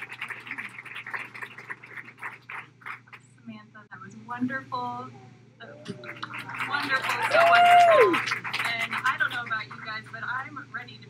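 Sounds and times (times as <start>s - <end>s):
audience clapping and cheering: 0.0s - 3.2s, 5.9s - 10.0s.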